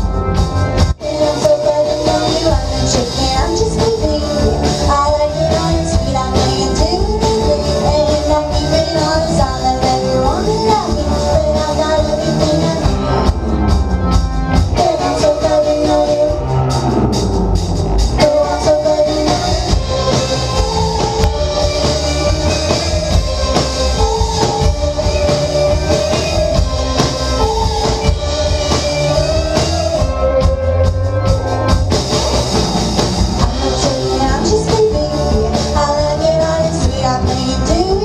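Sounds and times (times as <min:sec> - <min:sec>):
bass guitar: 0:00.0 - 0:38.0
drum kit: 0:00.0 - 0:38.0
electric guitars: 0:00.0 - 0:38.0.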